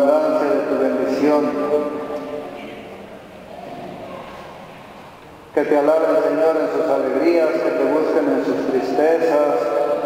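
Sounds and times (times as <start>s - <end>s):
low room noise: 0.0s - 10.0s
distant murmur of voices: 1.2s - 10.0s.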